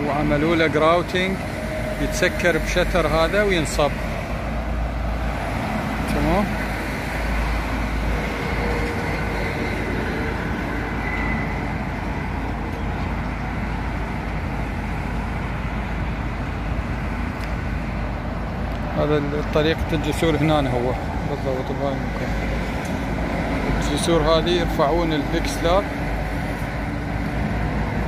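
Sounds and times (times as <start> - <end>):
road traffic rushing: 0.0 - 28.0.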